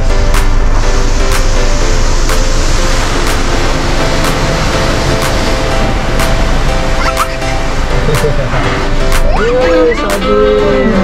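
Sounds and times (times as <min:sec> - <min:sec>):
water jets spraying on car: 0:00.0 - 0:09.3.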